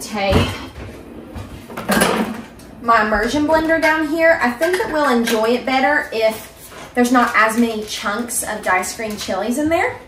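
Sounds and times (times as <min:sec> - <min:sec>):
metal pots and utensils clattering: 0:00.4 - 0:06.3.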